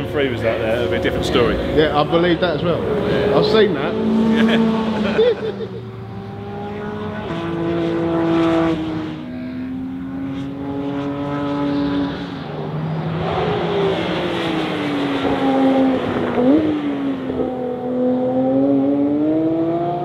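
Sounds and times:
race car engine passing: 0:00.0 - 0:20.0.

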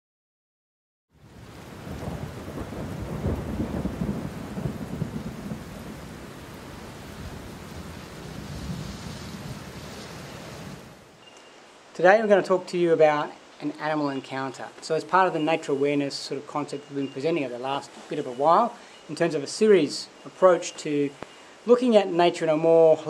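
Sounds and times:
rain-like hiss: 0:01.2 - 0:23.0
storm-like rumble: 0:07.0 - 0:11.0.

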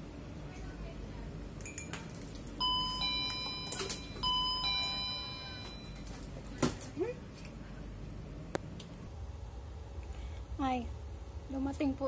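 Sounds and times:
electronic door chime: 0:02.6 - 0:06.2.

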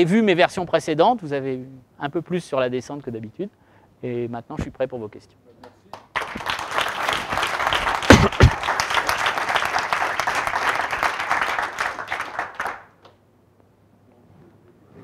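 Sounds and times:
audience applauding: 0:05.9 - 0:13.0.

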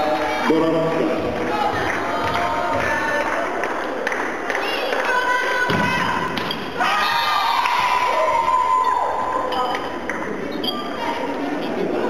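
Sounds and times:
voices shouting and cheering: 0:00.0 - 0:12.0.

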